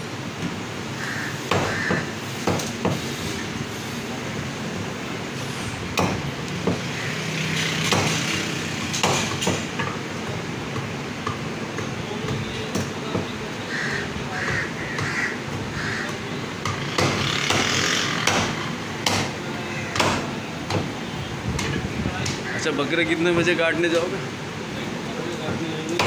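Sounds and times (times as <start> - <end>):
cleaver chopping meat on wood: 1.5 - 3.0, 6.0 - 6.9, 7.8 - 13.4, 14.4 - 20.9.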